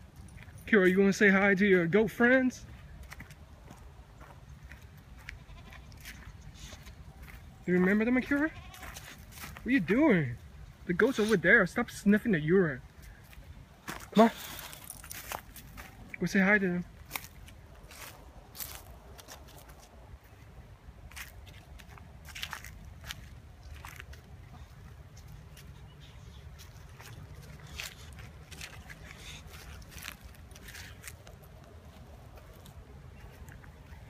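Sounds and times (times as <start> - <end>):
low rumble of wind: 0.0 - 7.9, 8.5 - 34.0
footsteps on dry leaves: 0.0 - 11.5, 12.9 - 34.0
baby goats bleating: 5.2 - 6.2, 8.3 - 9.1.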